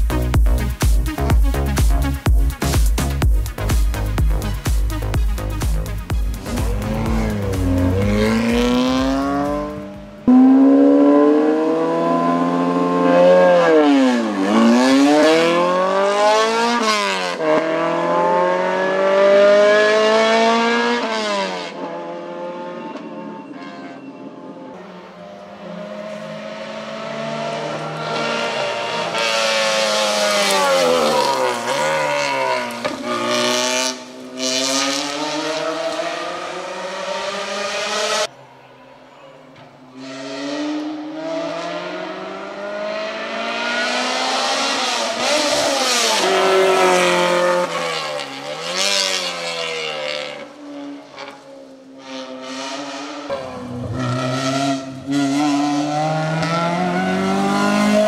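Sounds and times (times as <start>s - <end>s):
race car engine at full throttle: 3.6s - 58.0s.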